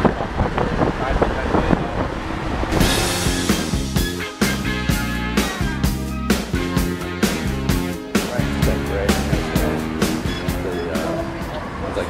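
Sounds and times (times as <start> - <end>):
wind buffeting microphone: 0.0 - 3.3
music with steady beat: 2.8 - 11.6.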